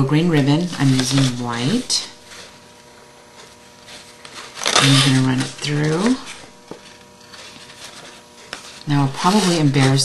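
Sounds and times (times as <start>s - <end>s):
woman speaking: 0.0s - 2.2s, 4.8s - 6.4s, 8.9s - 10.0s
faint steady hum: 0.0s - 10.0s
ribbon and paper rustling: 0.5s - 10.0s.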